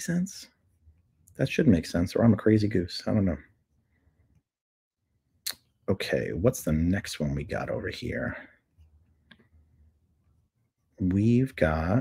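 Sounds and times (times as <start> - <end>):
man talking: 0.0 - 0.6, 1.3 - 3.6, 5.8 - 8.6, 11.0 - 12.0.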